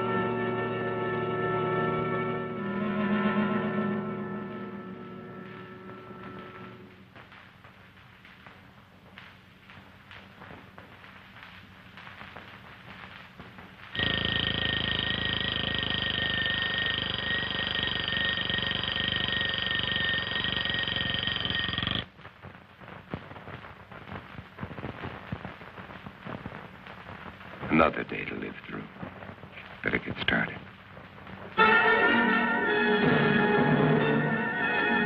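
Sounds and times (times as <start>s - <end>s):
bell alarm clock ringing: 14.0s - 22.0s.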